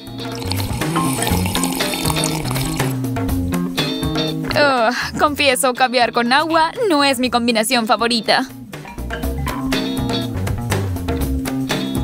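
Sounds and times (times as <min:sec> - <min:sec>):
drink sucked through straw: 0:00.3 - 0:03.0
music with stepping bass: 0:02.9 - 0:04.6, 0:08.6 - 0:12.0.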